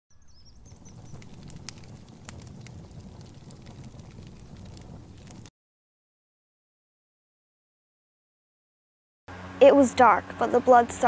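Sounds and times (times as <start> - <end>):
bird chirping: 0.1 - 1.4
burning wood popping: 0.2 - 5.5
campfire crackling: 0.2 - 5.5
low rumble: 0.5 - 5.5.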